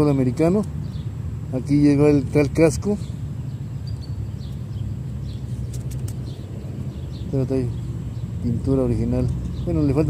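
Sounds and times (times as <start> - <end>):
faint bird chirps: 2.9 - 8.7
brief clicks: 5.7 - 6.3.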